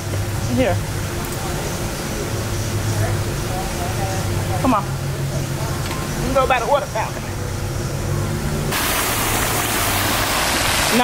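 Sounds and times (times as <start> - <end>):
fountain water splashing: 8.7 - 11.0.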